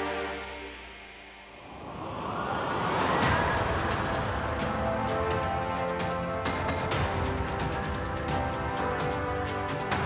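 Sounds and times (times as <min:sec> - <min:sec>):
theme music: 0:00.0 - 0:10.0
rising whoosh effect: 0:01.0 - 0:04.8.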